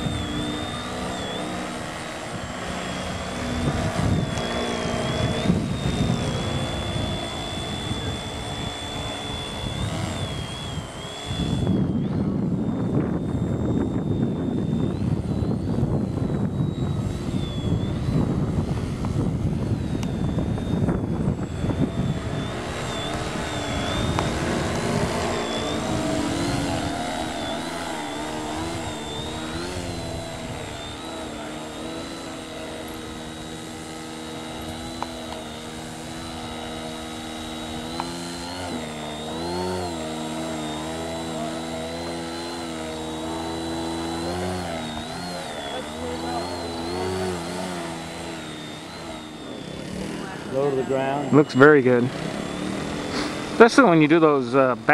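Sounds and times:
model plane motor whining: 0.0 - 54.9.

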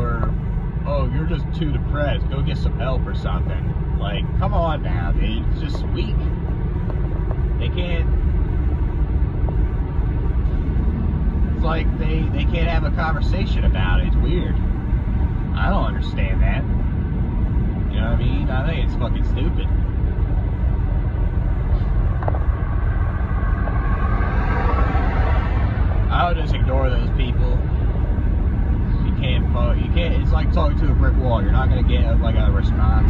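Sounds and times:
car engine and tyre rumble: 0.0 - 33.0.

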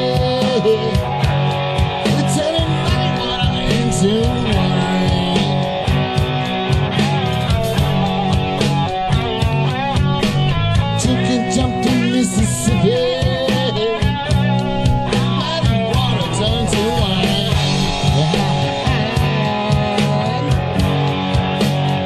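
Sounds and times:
rock band playing: 0.0 - 22.0.

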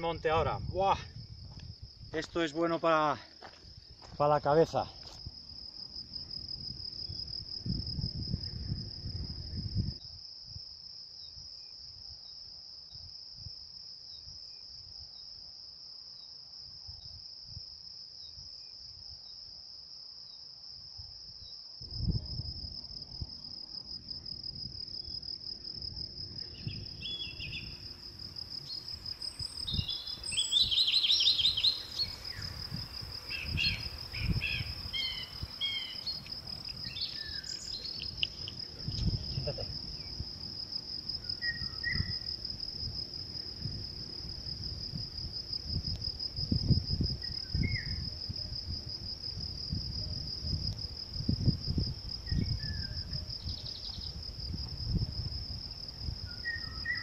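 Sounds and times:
crickets chirping: 0.0 - 57.0
low rumble on microphone: 6.3 - 10.0, 21.8 - 23.3
birds chirping: 29.5 - 32.6, 33.2 - 38.5.

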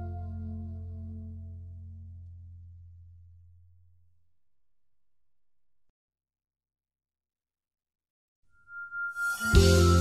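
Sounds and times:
background music: 0.0 - 2.2, 9.1 - 10.0.

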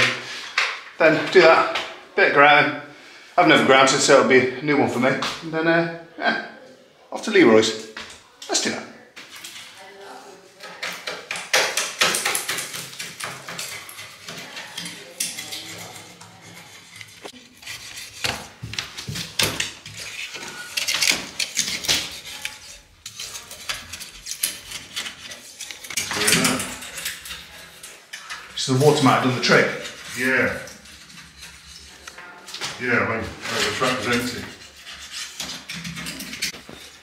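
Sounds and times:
hand tool scraping ceramic tiles: 8.6 - 9.9, 10.5 - 37.0.

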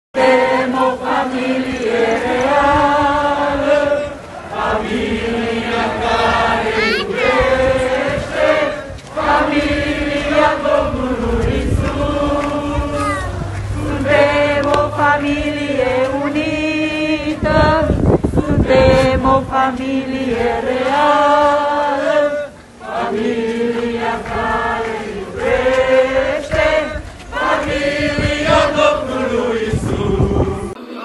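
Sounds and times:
group of voices chanting: 0.2 - 31.0.

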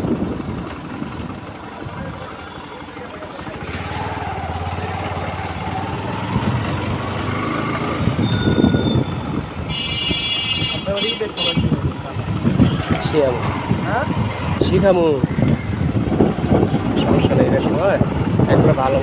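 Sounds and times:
motorcycle engine running: 0.0 - 19.0
wind buffeting microphone: 5.7 - 10.9, 11.6 - 19.0.

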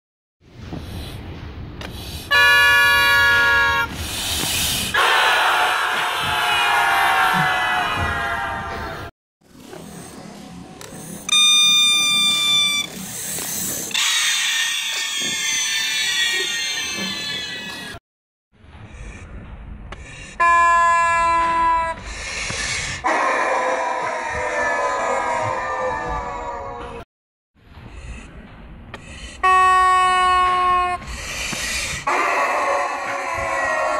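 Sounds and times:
loud multi-tone horn blast: 2.3 - 4.0.

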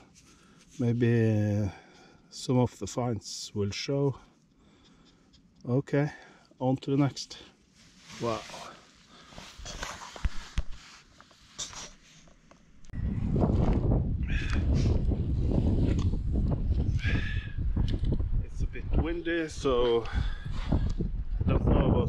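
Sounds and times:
rustles and light clicks: 7.8 - 13.0
wind buffeting microphone: 12.9 - 22.0.

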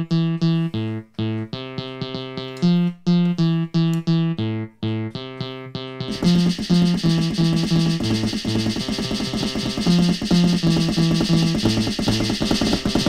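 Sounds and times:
repeated bass notes: 0.0 - 13.0
electronic drum beat: 6.1 - 13.0.

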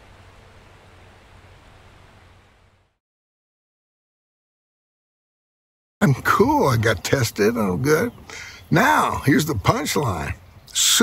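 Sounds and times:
low hum: 0.0 - 3.0
background hiss: 6.0 - 11.0.

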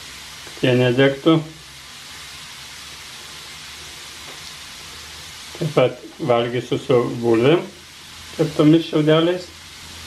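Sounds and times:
potatoes sizzling in a pan: 0.0 - 10.0.

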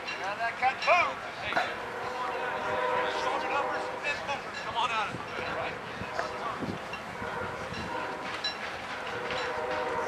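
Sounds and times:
distant horn steady tone: 1.6 - 4.3, 7.2 - 8.4, 9.0 - 10.0.

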